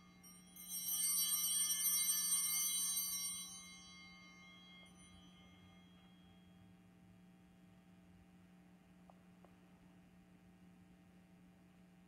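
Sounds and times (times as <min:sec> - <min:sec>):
small bells ringing: 0:00.0 - 0:06.8.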